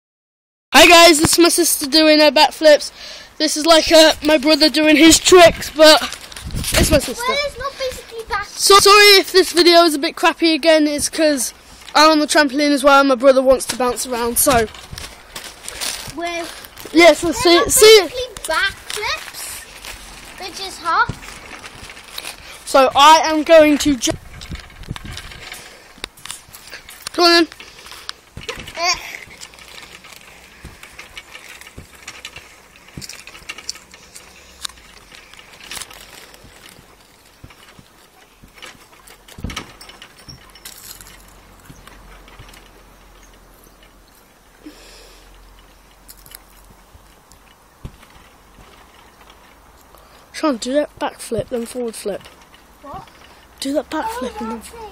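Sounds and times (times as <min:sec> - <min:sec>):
springs and frame rattling: 0:00.8 - 0:54.9
trampoline mat thumps: 0:28.4 - 0:29.4, 0:36.4 - 0:40.4, 0:47.8 - 0:48.8
dull thud on trampoline: 0:47.8 - 0:48.8
soft knocks on trampoline: 0:47.8 - 0:48.8.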